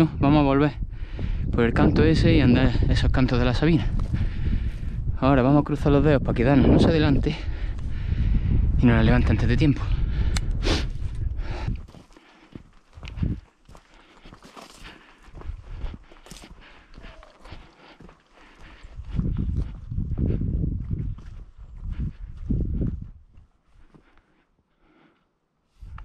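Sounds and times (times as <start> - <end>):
footsteps crunching on stony ground: 3.7 - 5.0, 10.9 - 24.4.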